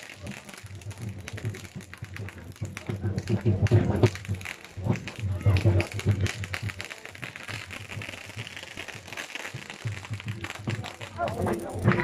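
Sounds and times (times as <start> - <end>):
fireworks hissing and crackling: 0.0 - 12.0.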